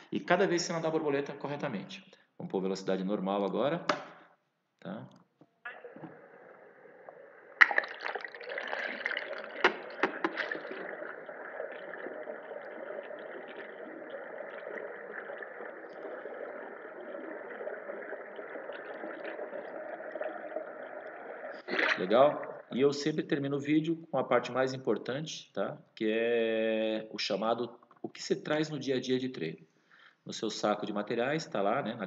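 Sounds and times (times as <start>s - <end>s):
water churning and splashing: 5.7s - 22.8s.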